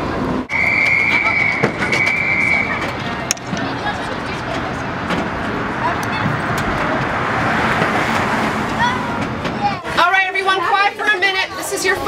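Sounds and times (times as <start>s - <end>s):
children chattering: 0.0s - 12.0s
street vehicle engine noise: 0.0s - 12.0s.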